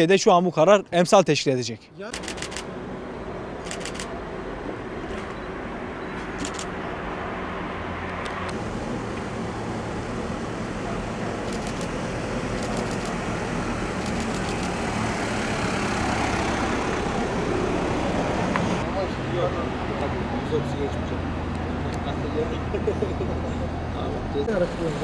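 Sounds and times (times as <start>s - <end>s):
quick sharp clicks: 2.1s - 2.7s, 12.5s - 13.2s, 14.0s - 14.8s.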